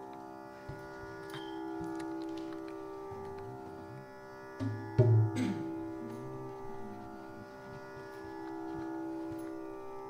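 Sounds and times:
steady drone of held tones: 0:00.0 - 0:10.0.

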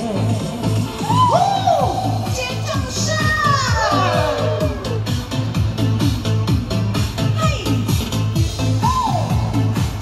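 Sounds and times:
dance-pop backing track: 0:00.0 - 0:10.0.

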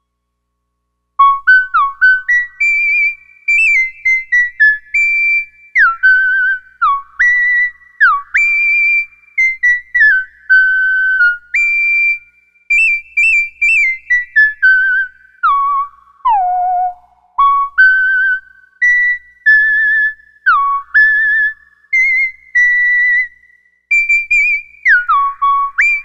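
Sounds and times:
synthesizer whistle-like melody: 0:01.2 - 0:26.0.

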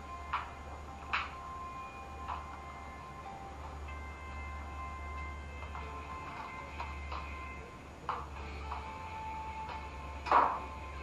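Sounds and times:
quiet background music: 0:00.0 - 0:11.0
steady low hum: 0:00.0 - 0:11.0.

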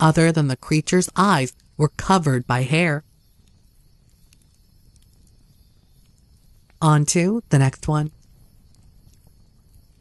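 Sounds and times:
faint background hiss: 0:00.0 - 0:10.0
soft ticks: 0:03.3 - 0:07.2, 0:07.9 - 0:10.0.

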